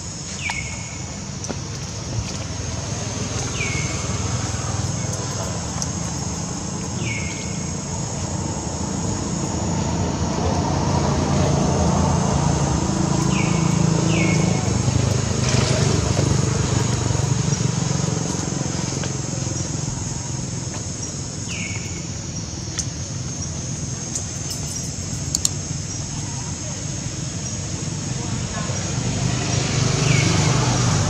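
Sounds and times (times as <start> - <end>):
vehicle engine rumble passing: 1.1 - 31.0.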